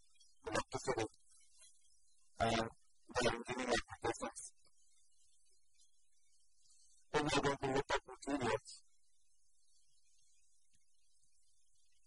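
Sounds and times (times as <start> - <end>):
person speaking: 2.4 - 4.5, 7.2 - 8.8.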